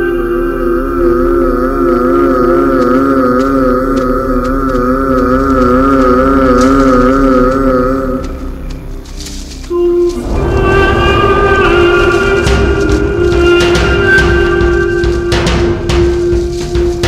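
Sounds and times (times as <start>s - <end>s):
eerie wavering synthesized chord: 0.0s - 17.0s.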